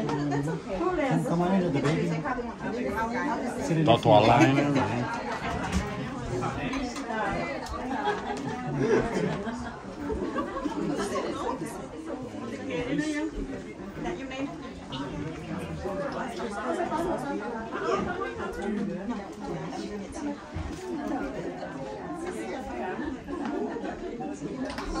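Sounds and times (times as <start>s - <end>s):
people chattering: 0.0s - 25.0s.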